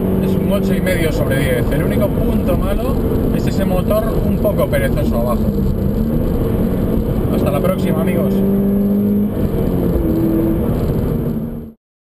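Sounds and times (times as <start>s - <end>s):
car engine running: 0.0s - 11.7s
road noise: 0.0s - 11.8s.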